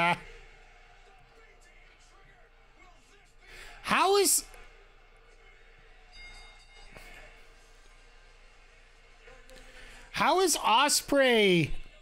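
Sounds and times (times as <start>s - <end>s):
faint indistinct voice or music: 0.0s - 10.1s.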